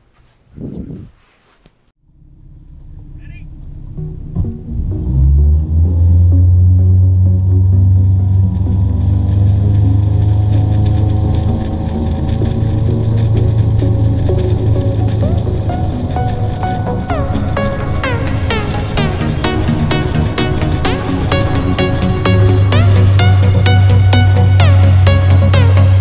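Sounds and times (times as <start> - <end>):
electronic music: 3.2 - 26.0
motorboat engine running hard: 8.7 - 24.1.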